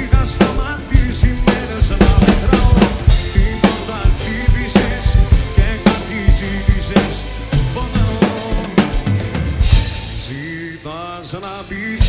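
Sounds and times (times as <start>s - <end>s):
acoustic drum kit playing: 0.0s - 12.0s
recorded pop song: 0.0s - 12.0s.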